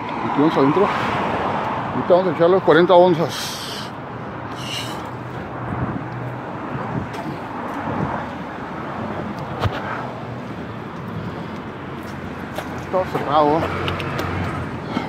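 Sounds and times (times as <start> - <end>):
street background noise: 0.0 - 15.0.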